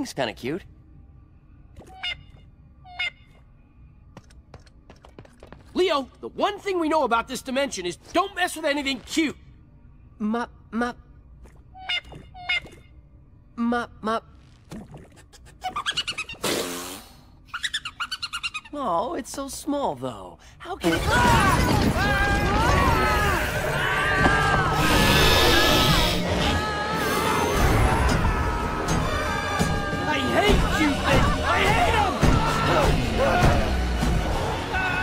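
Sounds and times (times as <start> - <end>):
harsh hissing cry: 24.7 - 28.9
cartoon creature chirping: 24.8 - 26.4.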